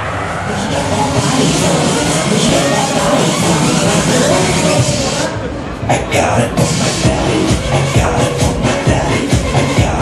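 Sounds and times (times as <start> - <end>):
fairground ride mechanical rushing: 0.0 - 10.0.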